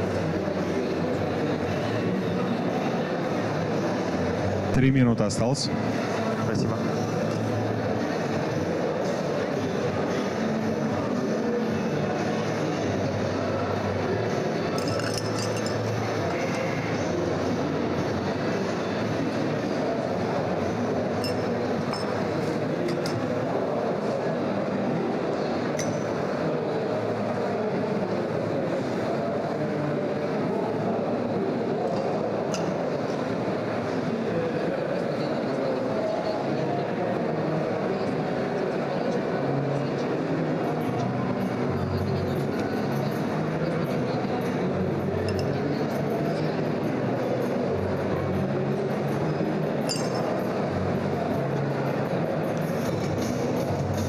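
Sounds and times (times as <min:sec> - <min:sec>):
murmur of chatter: 0:00.0 - 0:54.0
metal and glass clinks: 0:14.8 - 0:15.8, 0:49.9 - 0:50.4.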